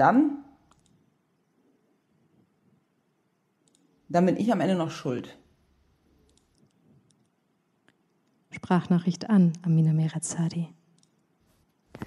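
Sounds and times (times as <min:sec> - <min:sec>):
computer mouse double click: 0:00.7 - 0:01.0, 0:03.6 - 0:03.9.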